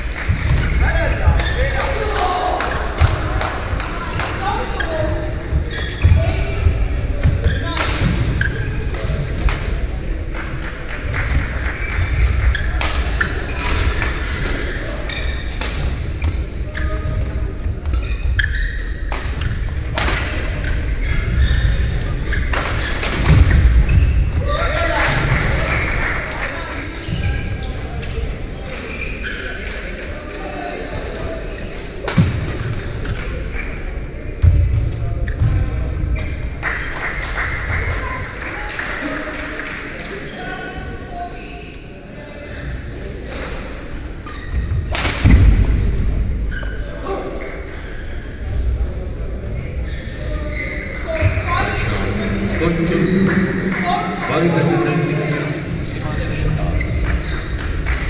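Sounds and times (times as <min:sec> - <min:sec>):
background voices chattering: 0:00.0 - 0:58.0.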